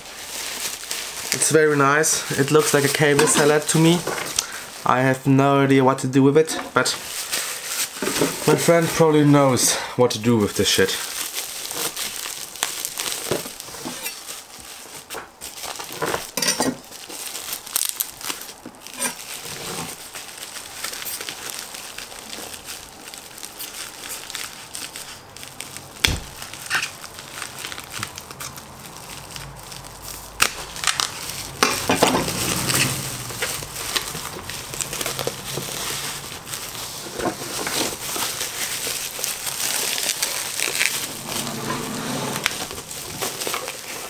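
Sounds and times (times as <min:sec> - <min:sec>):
bubble wrap crinkling: 0:00.0 - 0:44.0
dull thump: 0:26.0 - 0:26.4.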